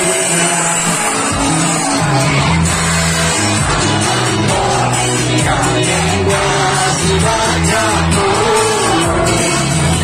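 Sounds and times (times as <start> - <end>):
loud live band instrumental: 0.0 - 10.0.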